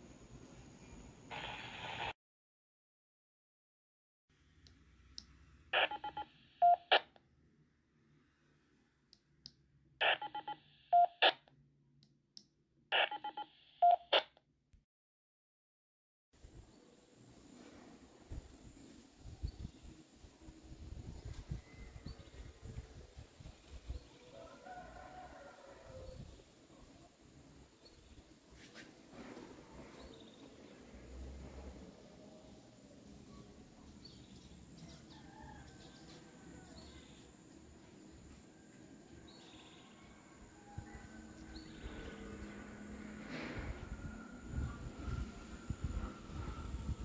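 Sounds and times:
radio speaker hiss: 1.3s - 2.2s
quick tone pulses: 5.8s - 7.0s
short radio beep: 5.8s - 7.0s, 10.0s - 11.4s, 13.0s - 14.2s
wind on microphone: 18.3s - 24.0s, 43.5s - 47.0s.

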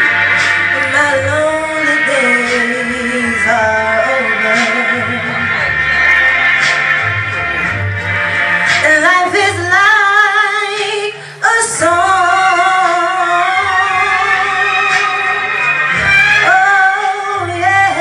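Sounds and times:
woman singing into a microphone: 0.0s - 5.7s, 8.8s - 15.5s, 16.1s - 18.0s
low instrumental accompaniment: 0.0s - 10.8s, 11.6s - 18.0s.

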